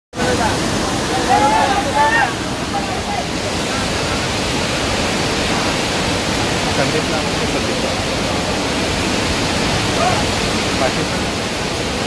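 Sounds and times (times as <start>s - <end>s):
waterfall rushing: 0.1s - 12.0s
voices calling out: 0.5s - 3.7s.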